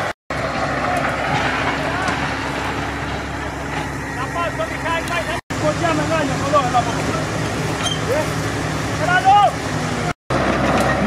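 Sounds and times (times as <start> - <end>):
tractor engine running: 0.0 - 11.0.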